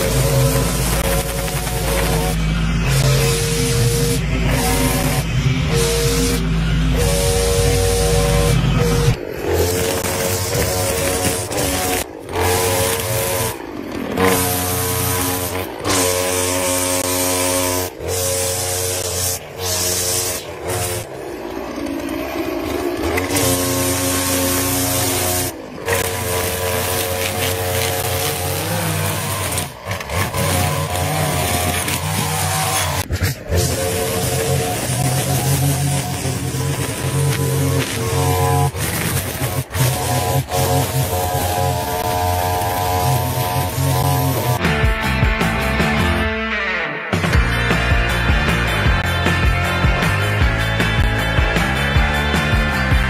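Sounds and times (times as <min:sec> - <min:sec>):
string trimmer engine cutting grass: 0:00.0 - 0:46.3.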